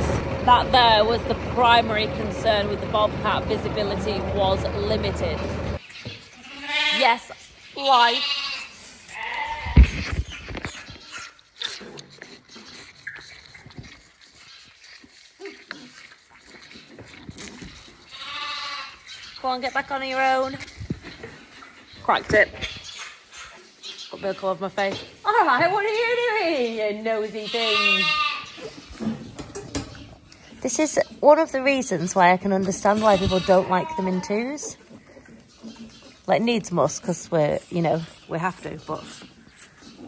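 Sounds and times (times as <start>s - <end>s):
calves sucking and slurping: 1.7s - 40.0s
calf bleating: 6.4s - 10.1s, 18.0s - 19.1s, 27.3s - 28.6s, 32.6s - 34.6s.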